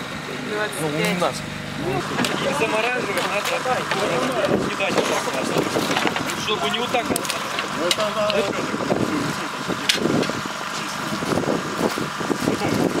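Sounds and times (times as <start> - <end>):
muffled talk: 0.2 - 11.5.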